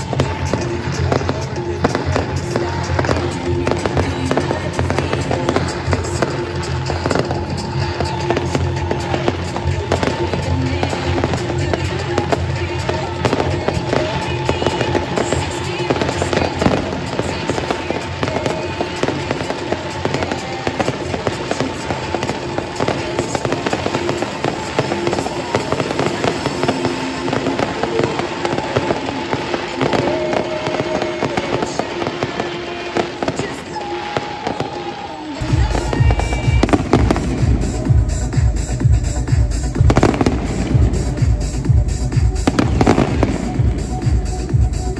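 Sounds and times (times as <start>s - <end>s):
fireworks bangs and pops: 0.0s - 44.9s
music: 0.0s - 44.9s.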